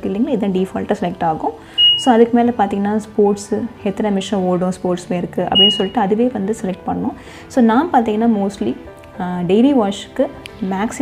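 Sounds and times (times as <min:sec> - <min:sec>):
woman talking: 0:00.0 - 0:11.0
high-pitched electronic beep: 0:01.8 - 0:02.2, 0:05.6 - 0:06.0.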